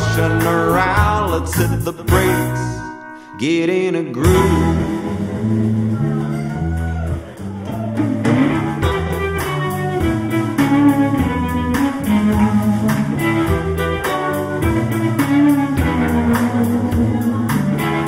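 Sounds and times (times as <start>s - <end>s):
blues band playing: 0.0s - 18.0s.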